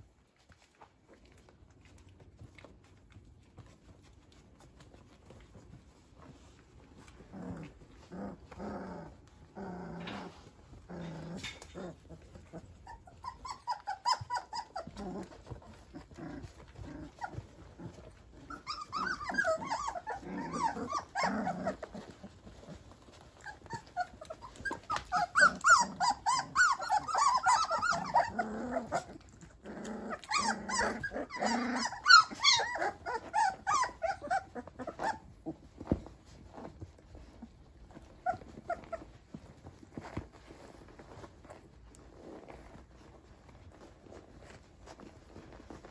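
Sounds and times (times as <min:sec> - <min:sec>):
puppies squealing and whining: 0:04.5 - 0:45.9.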